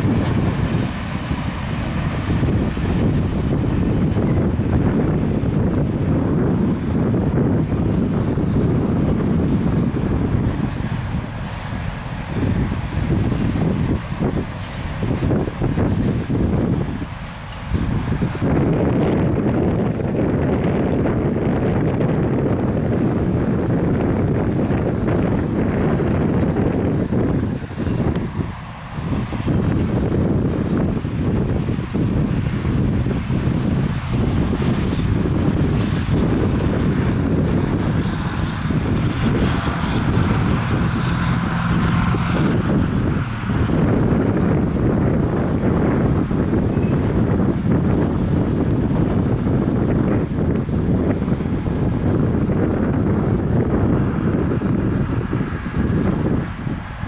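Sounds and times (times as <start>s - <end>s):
freight train wheels rumbling: 0.0s - 57.0s
wind buffeting microphone: 0.0s - 57.0s.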